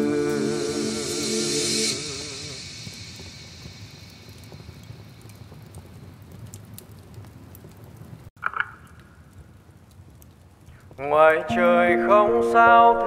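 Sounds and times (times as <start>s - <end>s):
music: 0.0s - 2.7s, 11.5s - 13.0s
rain-like patter: 2.6s - 11.5s
crackling clicks: 2.8s - 11.1s.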